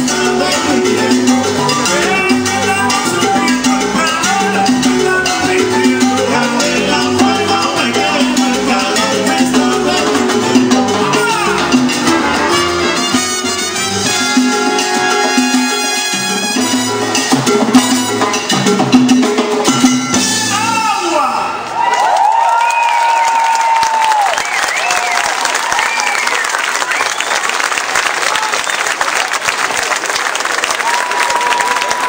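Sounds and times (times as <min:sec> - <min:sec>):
drums and percussion beat: 0:00.0 - 0:21.1
live band playing latin dance music: 0:00.0 - 0:21.2.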